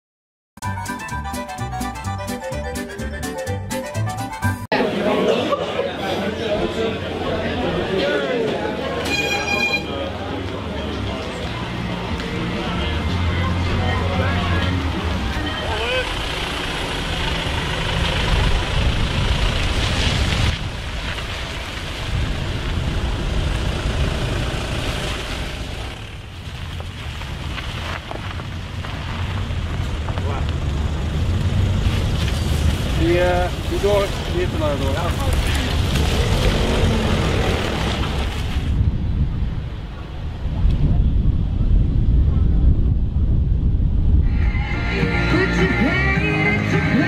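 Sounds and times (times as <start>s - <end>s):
people talking: 4.7s - 16.2s, 30.2s - 30.5s, 33.0s - 37.2s
short pitched tone: 9.0s - 10.1s, 44.2s - 45.2s
cars driving past: 9.9s - 20.5s, 27.8s - 38.8s.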